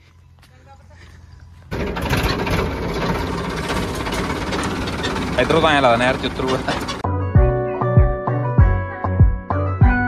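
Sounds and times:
tractor diesel engine running: 1.0 - 7.1.

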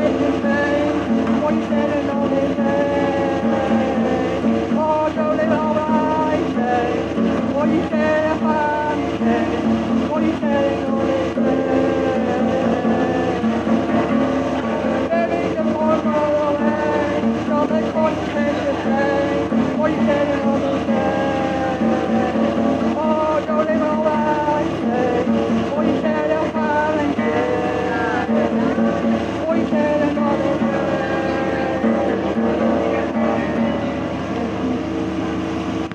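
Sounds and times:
woman singing: 0.0 - 34.8
acoustic guitar strumming: 0.0 - 35.9.

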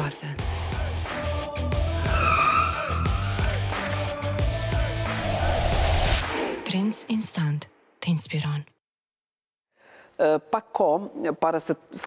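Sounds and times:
car tyre squealing: 2.0 - 3.3.

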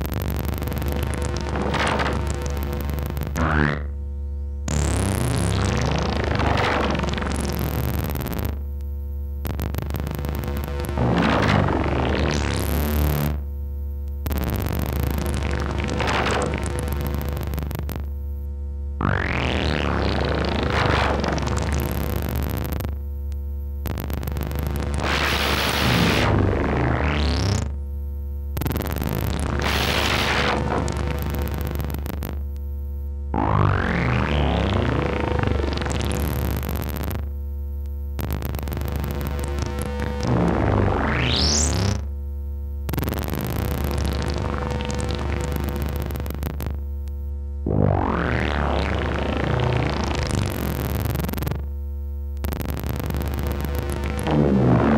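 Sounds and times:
buzzy sweeping synth tones: 0.0 - 8.6, 9.5 - 13.5, 19.0 - 22.8, 24.0 - 27.8, 28.8 - 32.2, 33.3 - 37.2, 38.2 - 42.1, 47.6 - 51.6, 52.5 - 54.9
steady low synth hum: 0.0 - 15.5, 25.8 - 41.0, 42.0 - 50.4.

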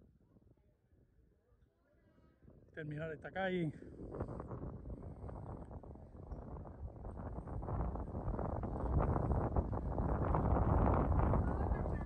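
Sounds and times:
wind rumbling on microphone: 2.0 - 12.0.

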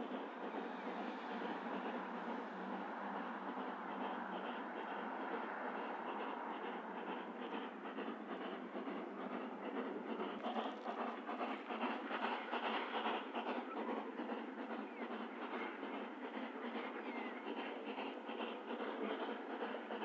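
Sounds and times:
steam exhaust: 0.0 - 20.0
wheels on rails: 0.0 - 20.0.

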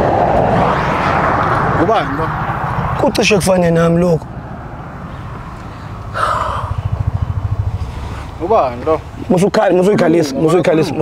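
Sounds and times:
vehicle engine rumble passing: 0.0 - 11.0
short hissing breath: 5.6 - 6.8.

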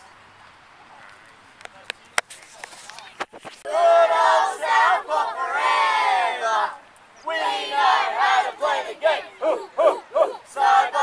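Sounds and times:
boys shouting a chant in unison: 3.7 - 11.0.

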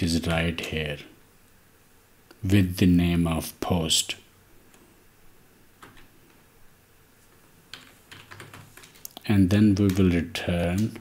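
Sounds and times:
keyboard typing: 7.7 - 9.2.

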